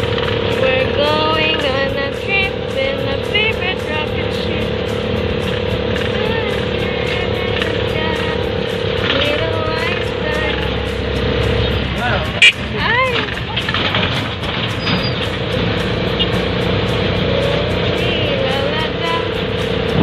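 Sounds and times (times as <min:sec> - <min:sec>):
engine and road rumble: 0:00.0 - 0:20.0
music with singing: 0:00.0 - 0:20.0.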